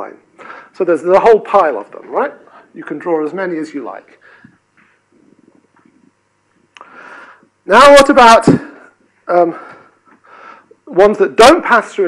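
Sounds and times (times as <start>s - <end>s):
intake of breath: 6.8s - 7.5s.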